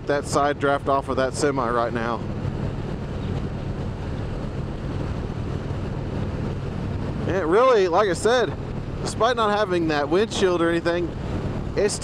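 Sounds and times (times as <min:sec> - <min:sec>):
wind rushing over helmet: 0:01.6 - 0:12.0.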